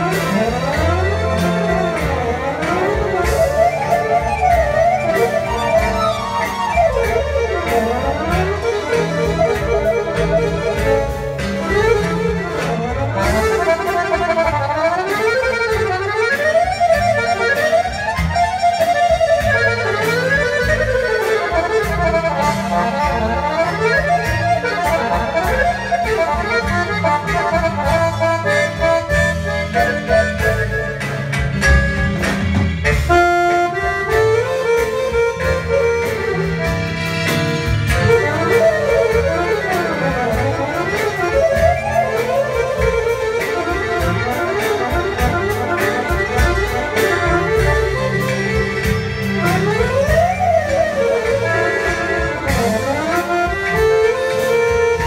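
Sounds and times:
accordions playing fast runs: 0.0 - 55.0
double bass line: 0.0 - 55.0.

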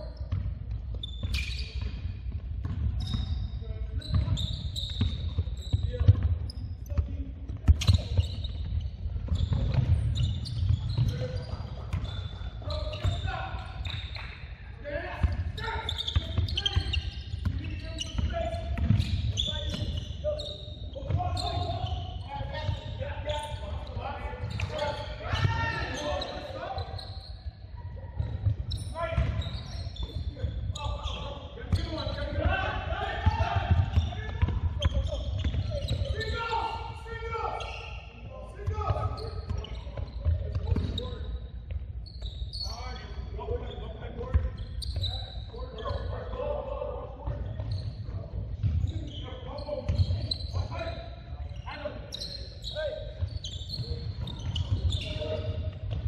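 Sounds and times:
basketball dribbling: 1.8 - 3.3
players calling out: 9.3 - 27.3, 28.2 - 41.3.

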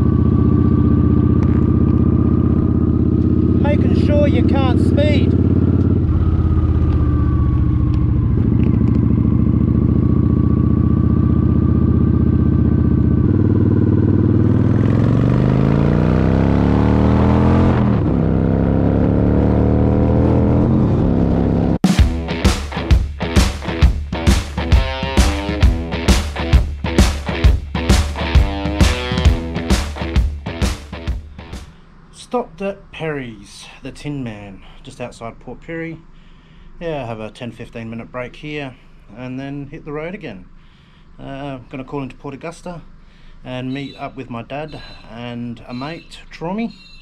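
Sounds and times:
motorcycle engine revving: 0.0 - 31.8
music with steady beat: 21.8 - 31.7.

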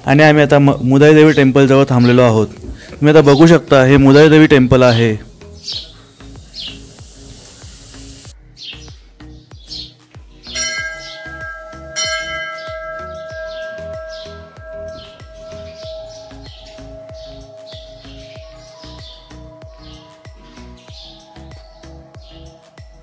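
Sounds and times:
birds chirping: 0.2 - 23.0
temple bell ringing: 10.6 - 20.8.

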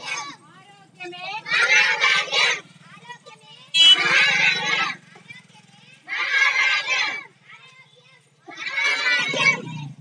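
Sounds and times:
children shouting in chorus: 0.0 - 0.4, 1.4 - 2.6, 3.7 - 5.0, 6.0 - 10.0.

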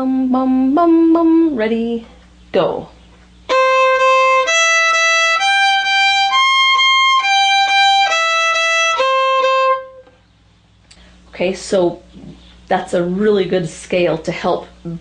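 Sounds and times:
solo violin arpeggio: 3.5 - 10.0.

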